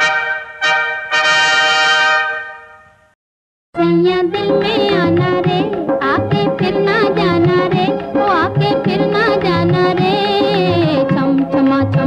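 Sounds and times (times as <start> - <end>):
brass chord: 0.0 - 3.1
song with singing: 3.8 - 12.0.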